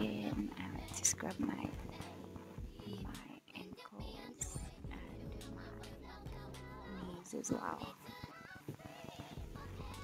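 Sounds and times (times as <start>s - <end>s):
soft music with vocals: 0.0s - 10.0s.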